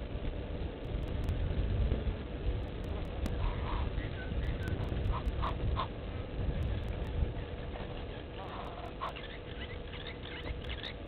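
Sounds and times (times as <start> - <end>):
low background rumble: 0.0 - 11.0
goslings peeping: 2.9 - 5.9, 6.6 - 11.0.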